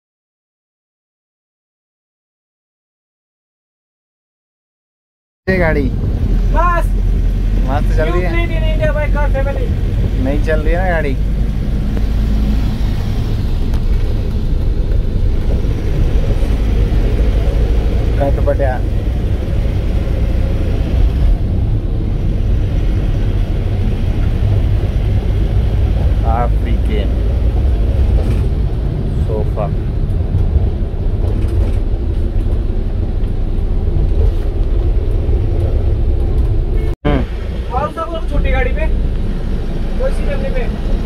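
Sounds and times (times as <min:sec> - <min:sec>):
voices: 0:05.5 - 0:11.2, 0:26.1 - 0:27.2, 0:37.1 - 0:39.0
diesel engine and road rumble: 0:05.5 - 0:41.0.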